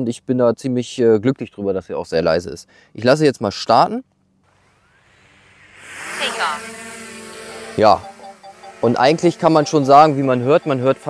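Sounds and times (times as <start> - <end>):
drone propellers humming: 4.5 - 11.0.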